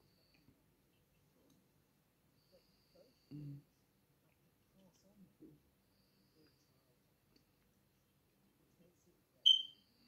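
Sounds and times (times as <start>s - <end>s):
short high-pitched beep: 9.5s - 9.8s.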